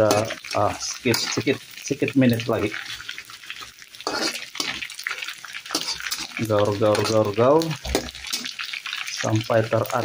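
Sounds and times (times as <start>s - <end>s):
metal spatula scraping wok: 0.0s - 1.7s, 2.5s - 9.1s
food sizzling in hot oil: 0.0s - 10.0s.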